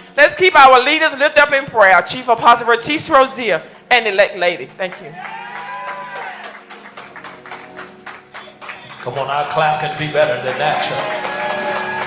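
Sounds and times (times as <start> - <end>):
sparse applause: 5.1 - 12.0.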